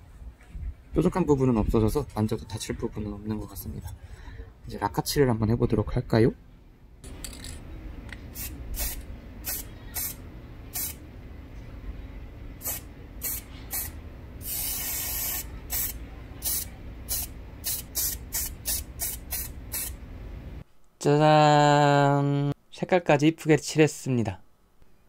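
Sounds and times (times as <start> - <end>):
aerosol can spraying: 8.3 - 11.0, 12.6 - 20.0.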